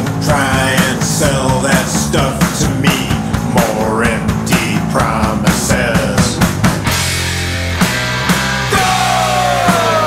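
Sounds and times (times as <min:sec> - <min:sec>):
drum beat: 0:00.0 - 0:10.0
electric guitar lead: 0:03.1 - 0:10.0.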